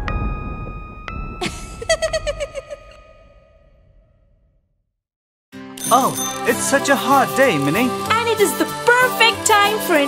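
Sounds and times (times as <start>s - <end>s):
low rumble: 0.0s - 4.9s
cartoon soundtrack music: 5.7s - 10.0s
chime-like tones: 5.8s - 7.4s.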